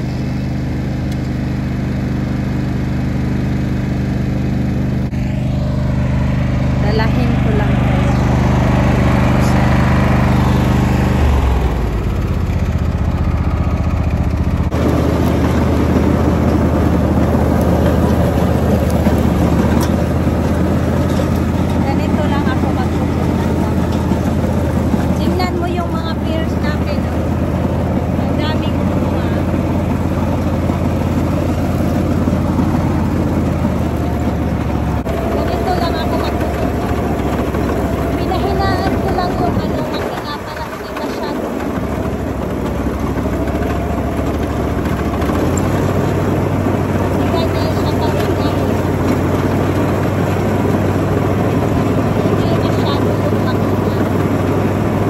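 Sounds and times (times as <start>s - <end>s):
riding lawn mower engine: 0.0s - 55.0s.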